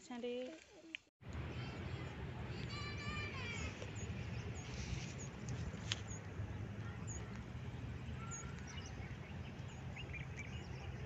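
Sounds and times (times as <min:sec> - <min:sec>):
low background rumble: 0:01.2 - 0:11.0.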